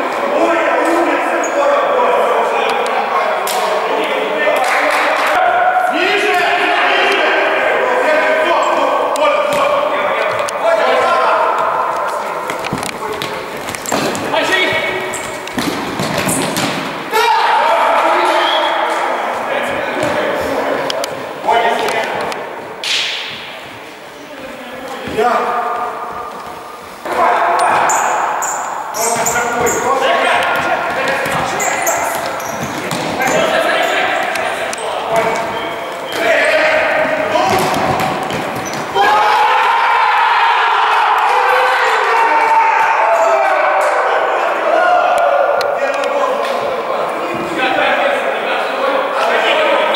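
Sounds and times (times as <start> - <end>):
players shouting: 0.0 - 22.6, 26.9 - 49.9
loud long shout: 17.1 - 19.0, 39.0 - 45.6.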